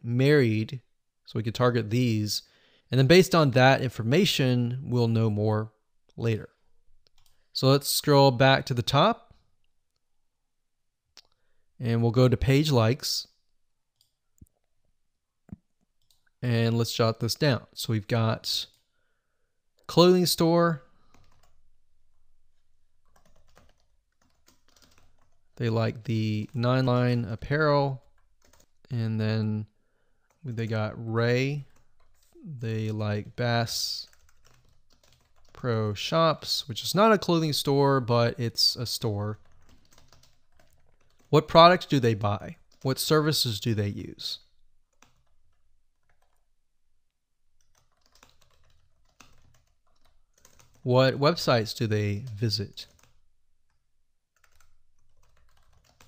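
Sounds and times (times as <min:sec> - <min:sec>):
faint typing on keyboard: 0:06.1 - 0:07.6, 0:15.5 - 0:17.5, 0:19.8 - 0:29.0, 0:30.0 - 0:46.6, 0:47.5 - 0:56.0.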